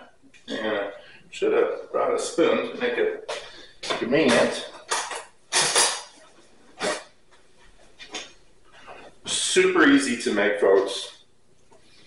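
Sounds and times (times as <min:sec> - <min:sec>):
metal cutlery clattering: 0:04.3 - 0:06.2.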